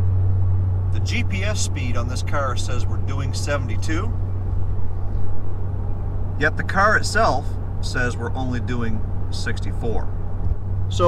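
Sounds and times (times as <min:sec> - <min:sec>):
road and engine noise in car cabin: 0:00.0 - 0:11.0.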